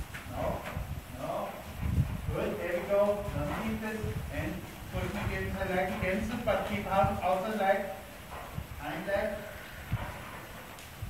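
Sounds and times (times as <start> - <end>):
horse hooves thudding on soft ground: 0.0 - 11.0.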